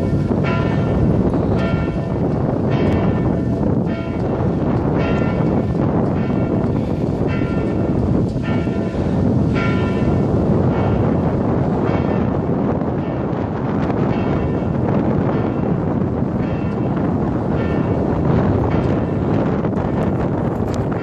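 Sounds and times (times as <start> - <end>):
church bells ringing: 0.0 - 21.0
wind rumble on microphone: 0.0 - 21.0.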